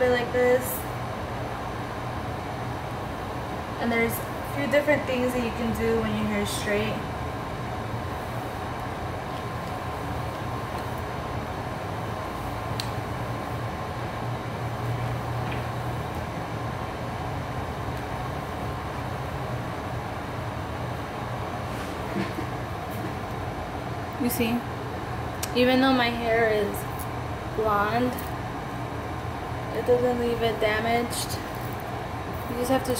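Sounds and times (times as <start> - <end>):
air conditioner humming: 0.0 - 32.9.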